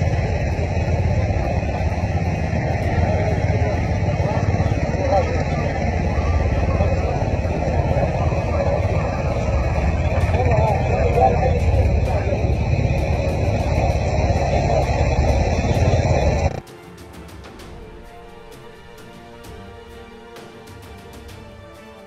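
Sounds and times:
indistinct voices: 0.0s - 16.6s
loud steady rumbling: 0.0s - 16.6s.

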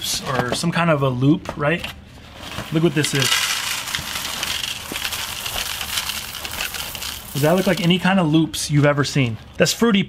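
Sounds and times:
cereal pouring into a bowl: 2.6s - 8.0s.

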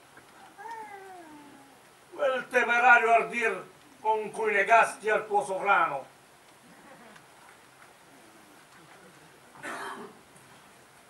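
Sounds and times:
faint drawn-out cry: 0.5s - 1.8s.

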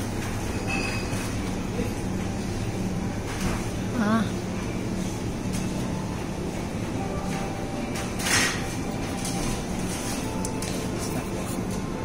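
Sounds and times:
supermarket background rumble: 0.0s - 12.0s.

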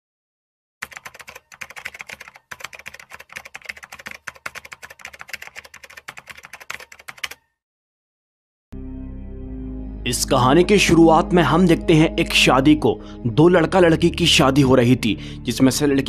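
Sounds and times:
keyboard key clicks: 0.8s - 7.4s.

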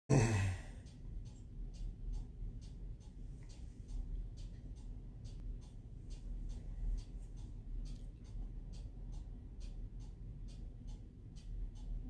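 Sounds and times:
man sighing: 0.1s - 0.8s.

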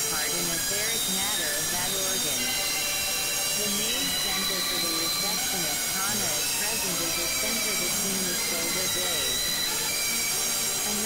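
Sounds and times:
experimental electronic noise music: 0.0s - 11.0s
gliding synthesizer tones: 0.0s - 11.0s.

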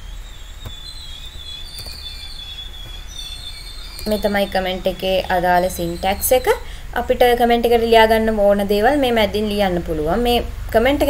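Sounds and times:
high-pitched whine: 0.0s - 11.0s
low hum: 0.0s - 11.0s.

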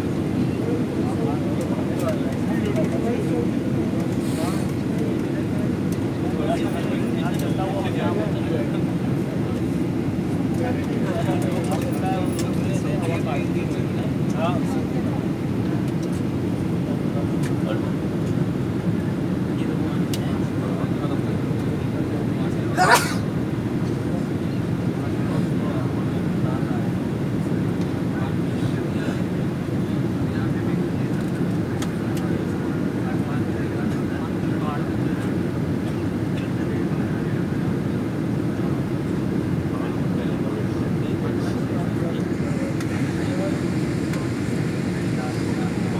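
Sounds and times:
airliner cabin rumble: 0.0s - 45.9s
faint passenger chatter: 0.0s - 45.9s.

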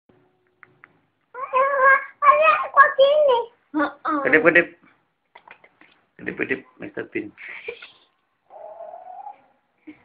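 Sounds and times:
child's high-pitched vocal sound: 1.4s - 4.0s.

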